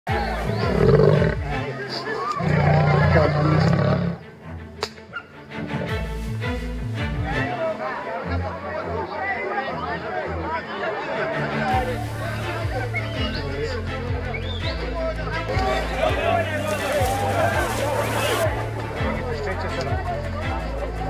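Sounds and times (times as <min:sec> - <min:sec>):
lion roaring: 0:00.5 - 0:01.6, 0:02.4 - 0:04.2.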